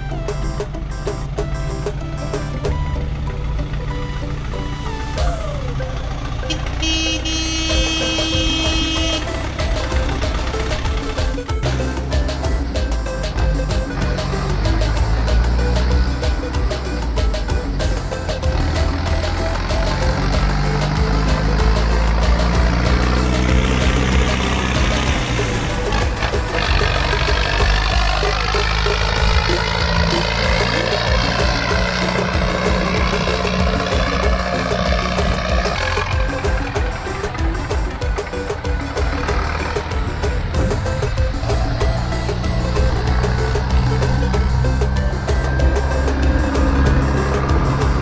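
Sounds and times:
background music: 0.0s - 48.0s
vehicle engine running: 0.0s - 48.0s.

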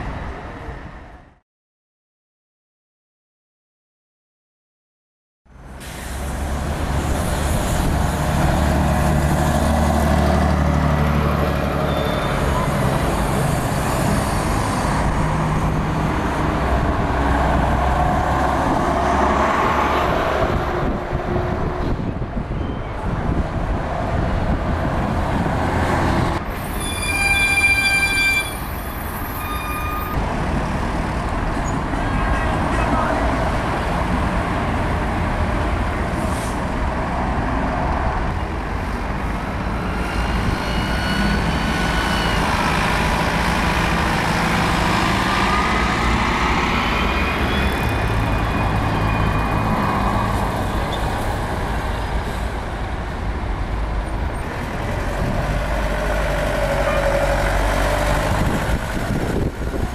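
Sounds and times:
road noise: 0.0s - 1.4s, 5.5s - 59.9s
diesel bus engine rumble: 41.3s - 59.9s.

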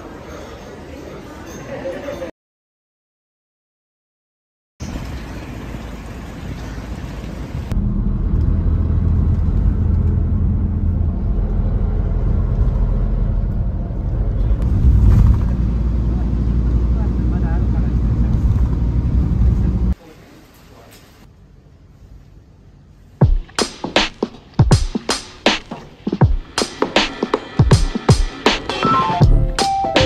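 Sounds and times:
engine and road rumble: 4.8s - 20.0s
light outdoor noise: 4.8s - 23.2s.

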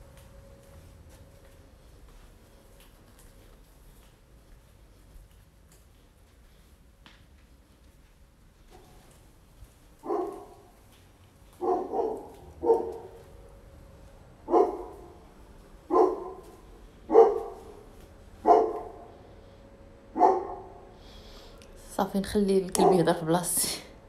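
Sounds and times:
dog barking: 10.0s - 10.7s, 11.6s - 13.2s, 14.5s - 15.2s, 15.9s - 16.5s, 17.1s - 19.1s, 20.2s - 20.8s, 22.8s - 23.1s.

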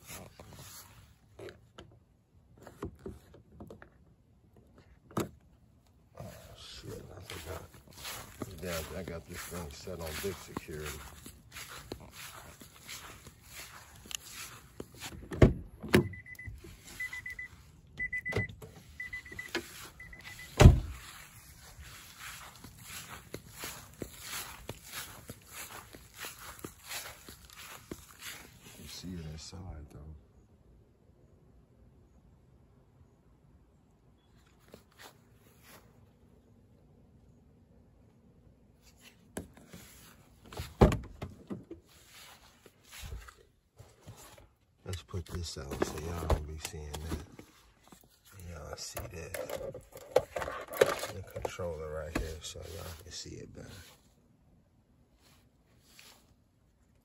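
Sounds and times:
footsteps on grass: 0.0s - 1.3s, 6.2s - 15.3s, 16.5s - 17.8s, 18.8s - 29.8s, 34.5s - 36.3s, 38.8s - 40.8s, 41.8s - 48.9s, 51.1s - 54.2s, 55.2s - 56.4s
rustling: 6.2s - 15.2s, 18.8s - 29.0s
high electronic car beep: 16.0s - 20.8s
car door thumps: 20.6s - 20.9s.

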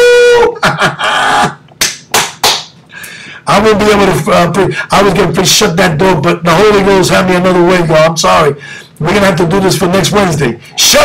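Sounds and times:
man laughing: 0.1s - 1.7s.

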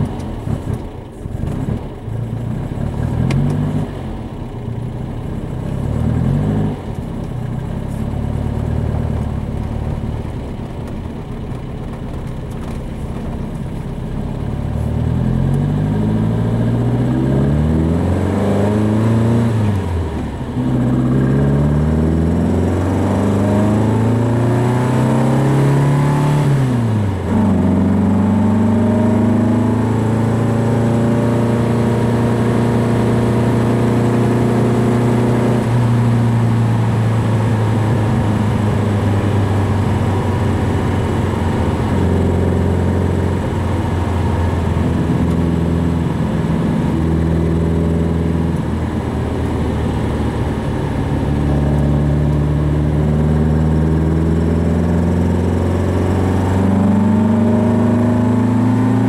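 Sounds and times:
car engine accelerating through gears: 0.0s - 59.0s.

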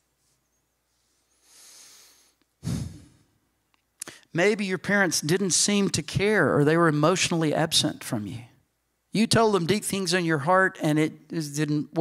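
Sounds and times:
man sighing into microphone: 2.6s - 3.3s.

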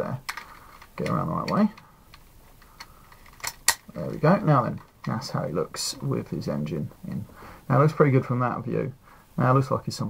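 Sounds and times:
hard plastic clicking: 0.2s - 3.9s.

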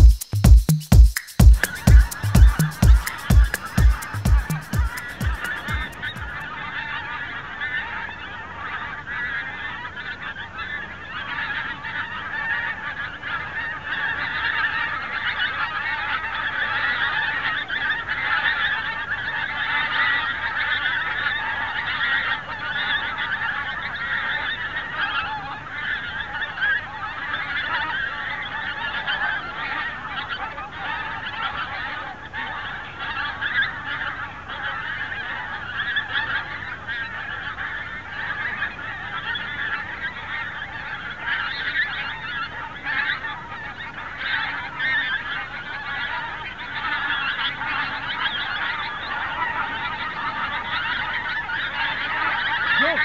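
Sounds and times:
electronic dance music: 0.0s - 6.4s
heavy kick drum: 0.0s - 6.4s
flock of geese calling: 1.2s - 53.0s.

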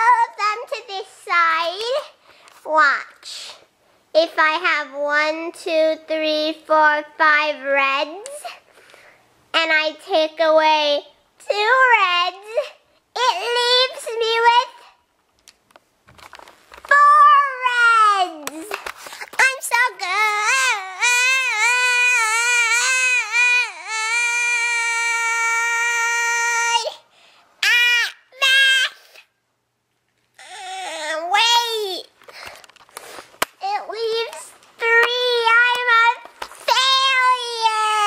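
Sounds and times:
girl wailing: 20.0s - 27.0s, 27.6s - 29.0s, 30.4s - 31.9s, 36.7s - 38.0s.

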